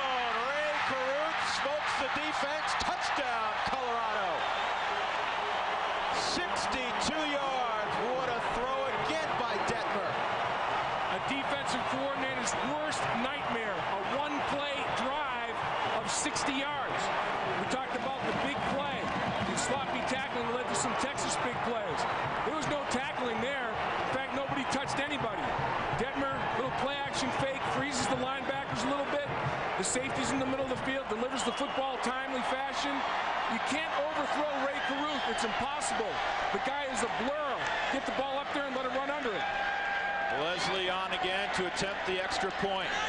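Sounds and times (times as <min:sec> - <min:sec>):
stadium crowd cheering and shouting: 0:00.0 - 0:43.0.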